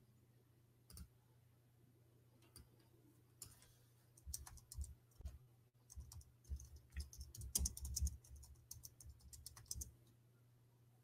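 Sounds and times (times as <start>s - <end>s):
keyboard typing and clicking: 4.2s - 10.0s.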